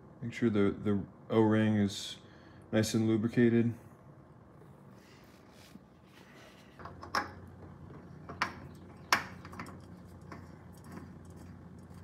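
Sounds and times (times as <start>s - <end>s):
low steady hum: 0.0s - 12.0s
oil filter clicking and knocking: 6.8s - 12.0s.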